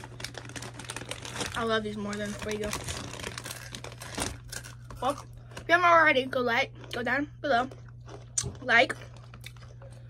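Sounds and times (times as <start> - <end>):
snack bag crinkling: 0.0 - 5.7, 7.7 - 10.0.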